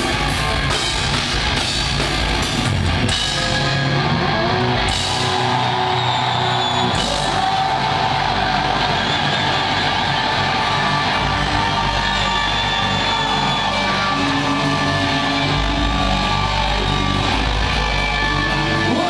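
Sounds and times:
distorted guitars: 0.0s - 19.0s
drums: 0.0s - 19.0s.

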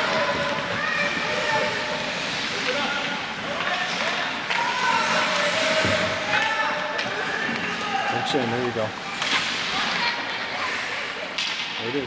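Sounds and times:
skates scraping on ice: 0.0s - 11.9s.

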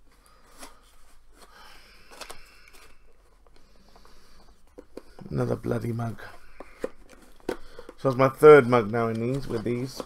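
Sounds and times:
cardboard ticks and crinkles: 2.0s - 10.0s.

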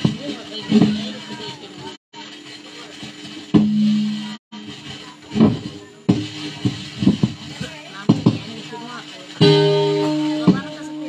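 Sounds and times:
background chatter: 0.0s - 11.0s
guitar chords strummed: 9.4s - 11.0s.

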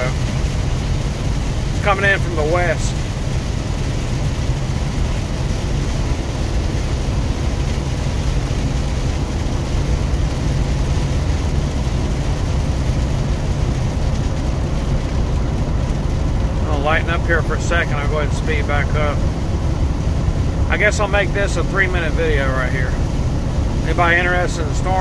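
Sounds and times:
rain: 0.0s - 25.0s
truck engine and road rumble: 0.0s - 25.0s
tyres hissing on wet road: 0.0s - 25.0s.

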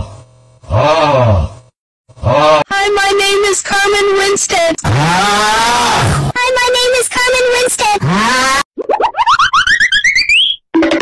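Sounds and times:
rising electronic chirps: 8.8s - 10.9s.

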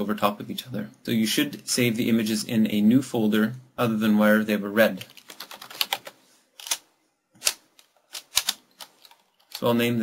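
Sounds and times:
keyboard keys clicking: 5.1s - 6.8s.

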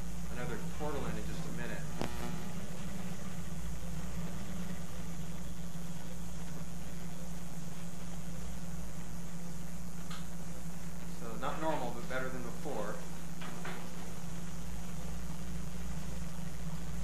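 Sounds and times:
motorized shaver humming: 0.0s - 17.0s.

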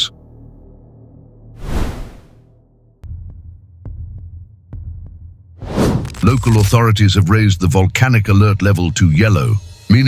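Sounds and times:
rising whoosh: 1.6s - 2.4s
whoosh: 1.6s - 2.4s.

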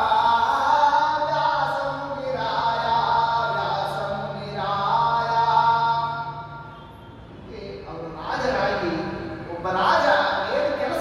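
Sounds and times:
man chanting into microphone: 0.0s - 6.6s, 7.5s - 11.0s.

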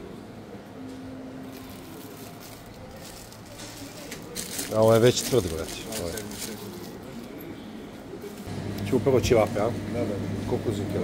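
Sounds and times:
supermarket background noise: 0.0s - 11.0s.

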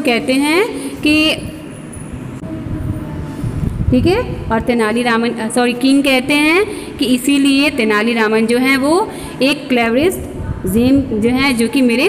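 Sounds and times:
low uneven background rumble: 0.0s - 12.0s.

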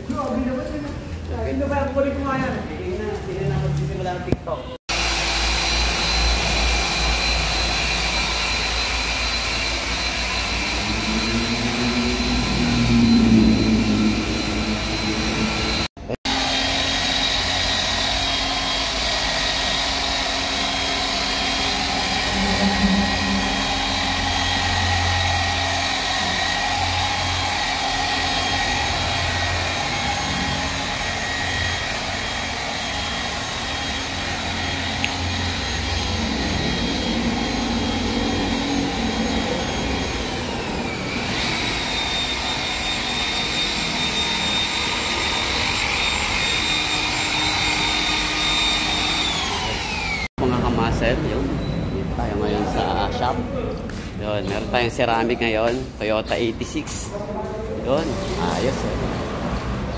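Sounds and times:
electric polisher motor whine: 4.9s - 50.4s.

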